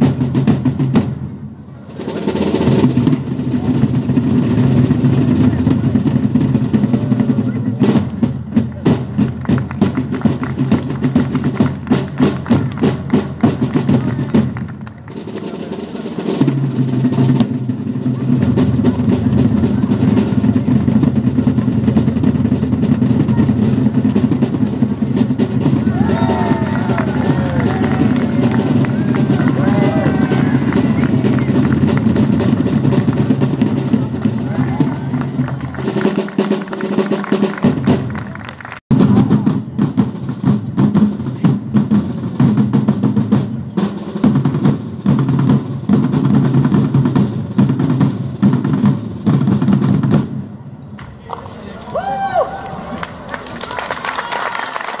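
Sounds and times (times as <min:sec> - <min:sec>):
sharp drum beats: 0:00.0 - 0:01.4, 0:02.0 - 0:54.3
drum roll: 0:00.0 - 0:55.0
voices: 0:23.2 - 0:38.7, 0:50.9 - 0:55.0.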